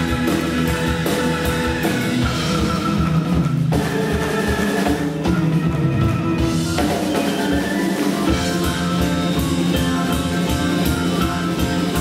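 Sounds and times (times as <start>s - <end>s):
progressive rock band playing: 0.0s - 12.0s.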